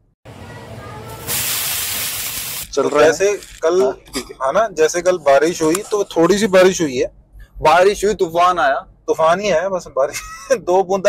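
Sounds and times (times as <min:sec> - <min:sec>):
water sizzling on hot griddle: 0:01.1 - 0:02.8
steady steam hiss: 0:01.2 - 0:02.8.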